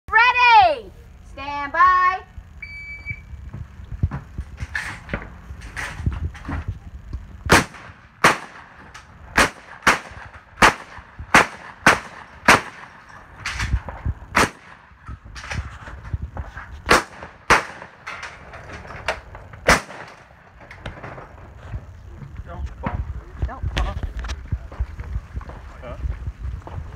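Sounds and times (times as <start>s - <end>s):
gunshots: 7.5s - 15.7s, 16.8s - 18.2s, 19.6s - 21.0s.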